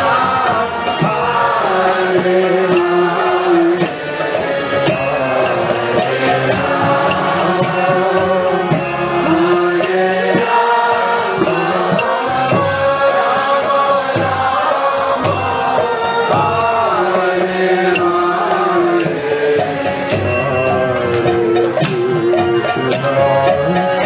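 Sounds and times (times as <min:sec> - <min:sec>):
hand cymbals struck: 0:00.0 - 0:24.0
instrumental accompaniment: 0:00.0 - 0:24.0
voices chanting: 0:00.0 - 0:24.0.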